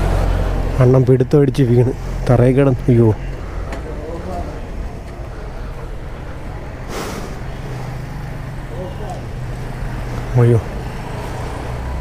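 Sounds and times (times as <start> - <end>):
traffic engine hum: 0.0 - 12.0
short sharp hiss: 6.9 - 7.5.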